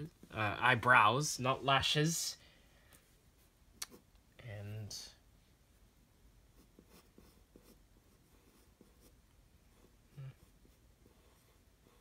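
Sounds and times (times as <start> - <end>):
pencil scratching on paper: 6.6 - 12.0.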